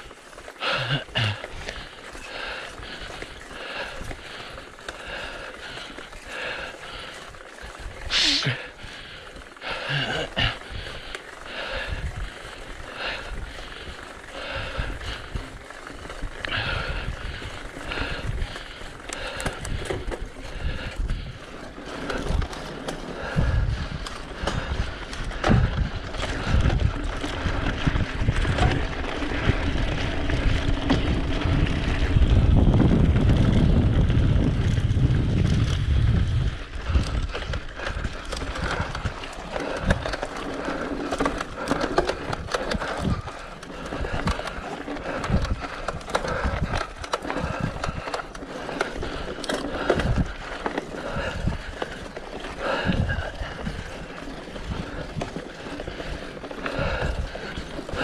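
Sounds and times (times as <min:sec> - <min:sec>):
bike rattling over rocks: 0:00.0 - 0:58.0
bike tyres crunching on stones: 0:00.0 - 0:58.0
wind on microphone: 0:23.2 - 0:40.1, 0:52.6 - 0:54.0.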